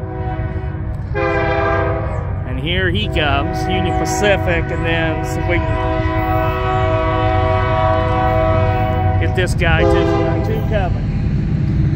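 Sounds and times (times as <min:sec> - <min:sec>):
locomotive air horn chord: 0:00.0 - 0:11.0
low rumble: 0:00.0 - 0:11.9.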